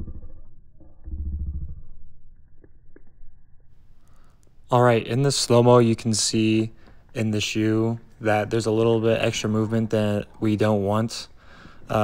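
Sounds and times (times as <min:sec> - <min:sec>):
deep drawn-out rumble: 0:00.0 - 0:03.7
low hum: 0:00.0 - 0:10.3.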